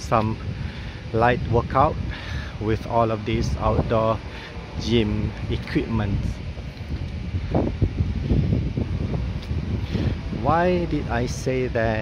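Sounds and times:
wind on microphone: 0.0 - 12.0.

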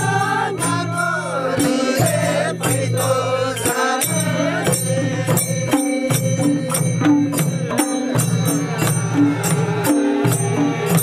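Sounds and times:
hand cymbal strokes: 0.0 - 11.0
hand drum: 0.0 - 11.0
men chanting folk song: 0.0 - 11.0.

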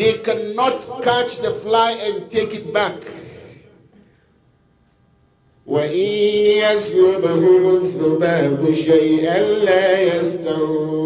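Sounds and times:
man chanting into microphone: 0.0 - 3.7, 5.7 - 11.0.

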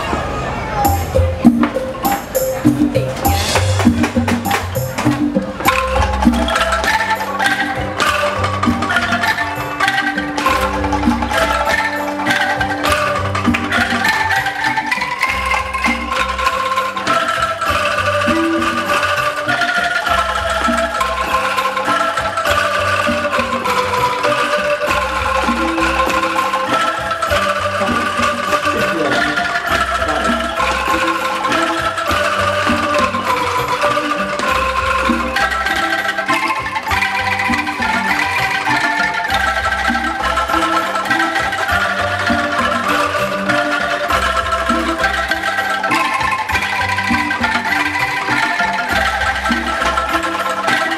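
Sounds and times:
bamboo angklung ensemble: 0.0 - 50.9.

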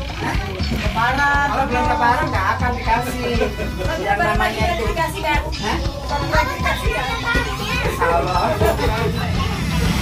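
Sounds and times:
music playing: 0.0 - 10.0
voices chattering: 0.0 - 10.0.

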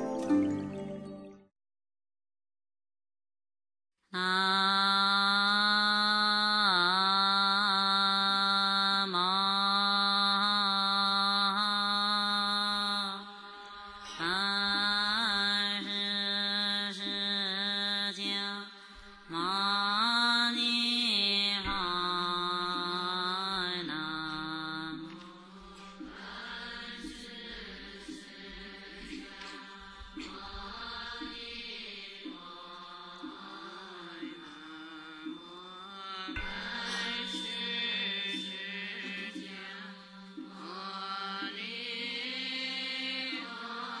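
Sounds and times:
person chanting: 4.2 - 44.0.

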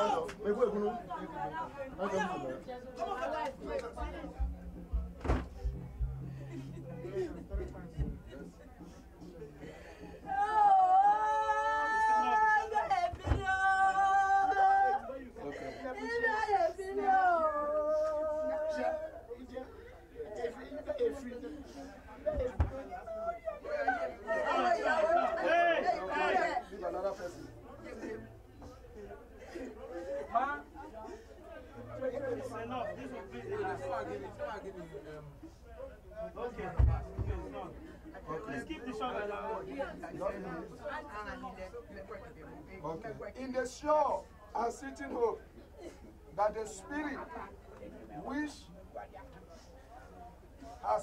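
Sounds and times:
people chattering: 0.0 - 51.0
people talking over one another: 0.0 - 51.0
low thumps: 3.9 - 8.6.

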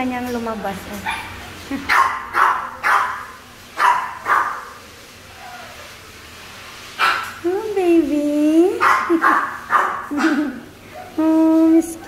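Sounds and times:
dog barking: 1.0 - 4.8, 7.0 - 7.4, 8.8 - 11.2.

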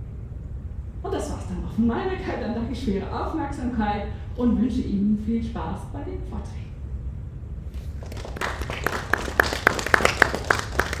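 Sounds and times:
low steady hum: 0.0 - 11.0
hands clapping in applause: 8.0 - 11.0.

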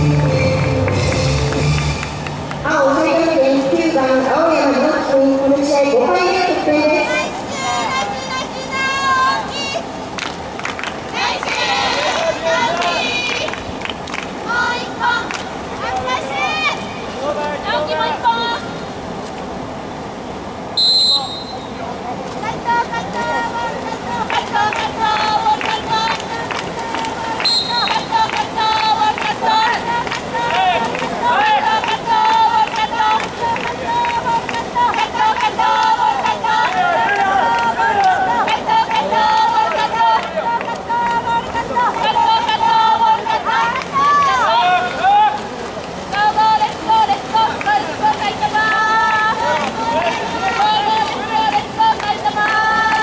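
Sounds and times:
many voices shouting: 11.1 - 13.6, 22.5 - 53.0
referee whistle blast: 20.8 - 21.7, 27.4 - 28.0.

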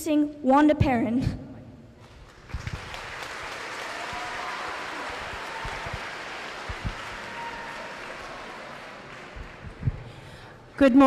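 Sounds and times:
audience clapping: 2.0 - 10.7.

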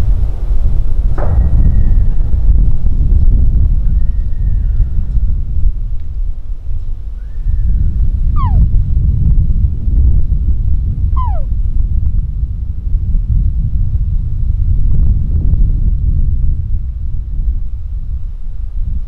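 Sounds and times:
wind rumbling on microphone: 0.0 - 19.0
high whistled calls: 8.4 - 8.6, 11.2 - 11.5.

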